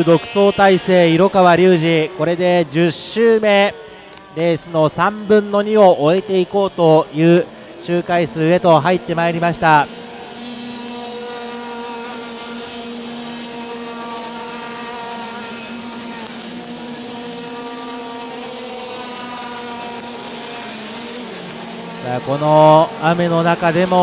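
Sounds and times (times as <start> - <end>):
racing kart engines: 0.0 - 24.0.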